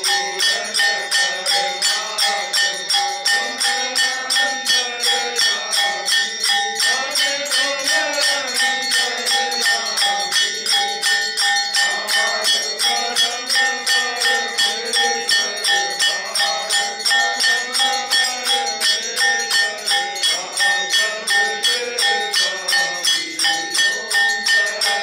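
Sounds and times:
bells struck in steady rhythm: 0:00.0 - 0:25.0
devotional singing: 0:00.0 - 0:25.0.

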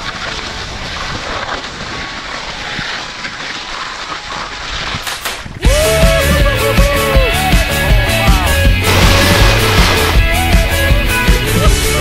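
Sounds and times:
skis sliding on snow: 0:00.0 - 0:05.6
wind on camera microphone: 0:00.0 - 0:05.7
loud rock music: 0:05.7 - 0:12.0.

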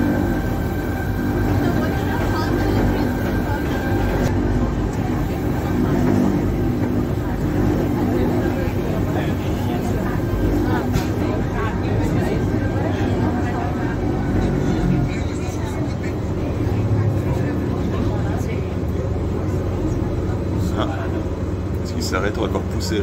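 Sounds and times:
train rumbling: 0:00.0 - 0:23.0.

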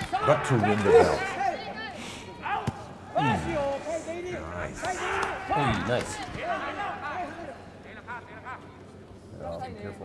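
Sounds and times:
people shouting: 0:04.8 - 0:07.1.

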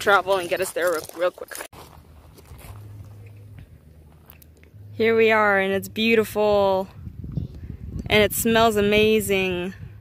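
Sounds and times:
footsteps crunching on gravel: 0:00.0 - 0:04.6
low steady rumble: 0:01.8 - 0:10.0.

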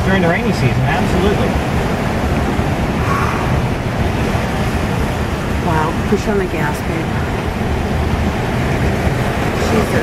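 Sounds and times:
floodwater rushing around car: 0:00.0 - 0:10.0.

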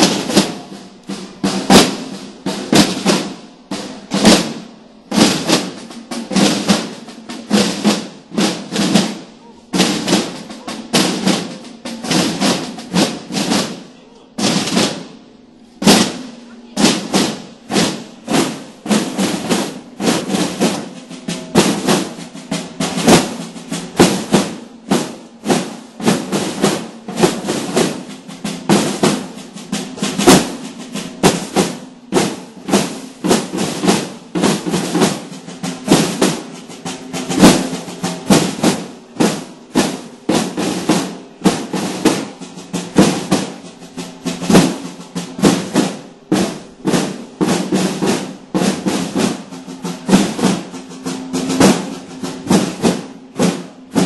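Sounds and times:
snare drums marching rhythm: 0:00.0 - 0:54.0.

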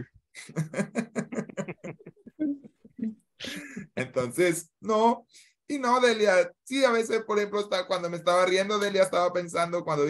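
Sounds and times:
person laughing: 0:00.0 - 0:04.1.

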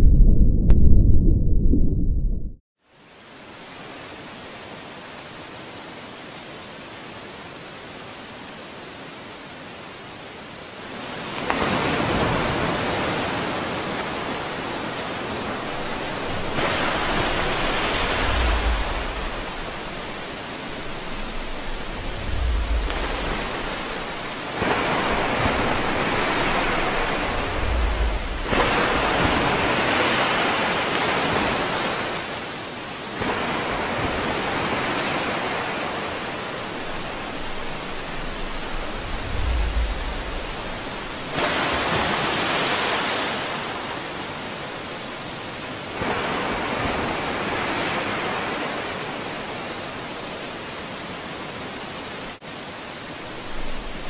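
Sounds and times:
low thuds: 0:00.0 - 0:02.6, 0:15.7 - 0:29.3, 0:36.8 - 0:41.4
waterfall rushing: 0:03.4 - 0:54.0.

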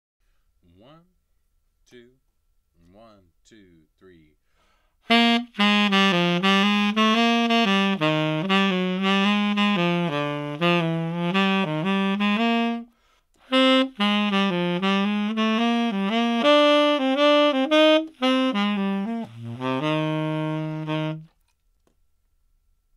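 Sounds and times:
tenor saxophone playing: 0:05.0 - 0:21.4.

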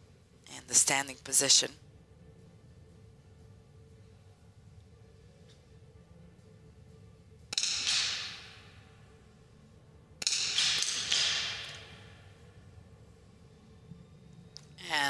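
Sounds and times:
rifle shots echoing indoors: 0:07.6 - 0:08.8, 0:10.2 - 0:12.4.

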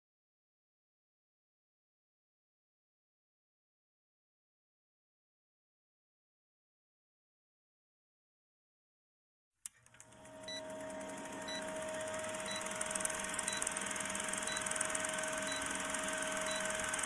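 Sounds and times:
projector whir with crackle: 0:09.7 - 0:17.0
short high beeps: 0:10.5 - 0:10.7, 0:11.4 - 0:17.0.

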